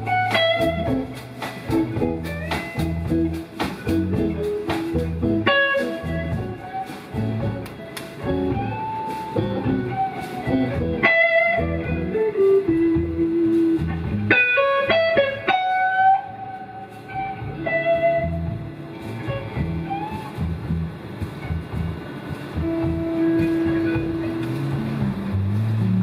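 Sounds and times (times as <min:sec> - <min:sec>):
drums: 0:00.0 - 0:26.0
electric bass: 0:00.0 - 0:26.0
electric guitar: 0:00.0 - 0:26.0.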